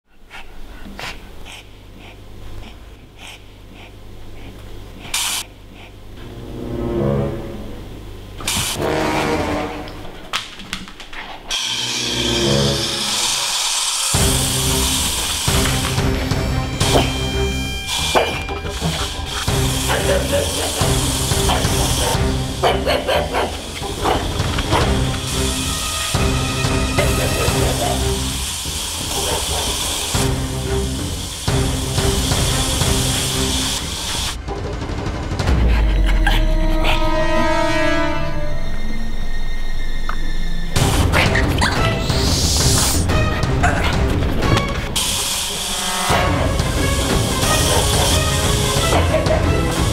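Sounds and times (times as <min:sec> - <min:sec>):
dog noisy breathing: 0:00.0 - 0:06.3, 0:17.9 - 0:25.7, 0:27.0 - 0:30.2, 0:35.4 - 0:37.2
hissing puff of air: 0:05.0 - 0:06.0, 0:12.4 - 0:34.4, 0:40.8 - 0:43.2, 0:43.9 - 0:49.9
background music: 0:06.1 - 0:10.2, 0:11.5 - 0:49.9.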